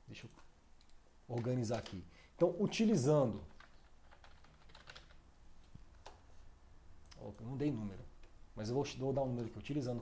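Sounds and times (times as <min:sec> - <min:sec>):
faint keyboard typing: 0:00.2 - 0:06.4.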